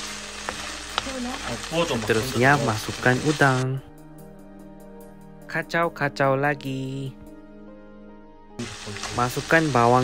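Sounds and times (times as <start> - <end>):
meat sizzling in hot oil: 0.0 - 3.8, 8.6 - 10.0.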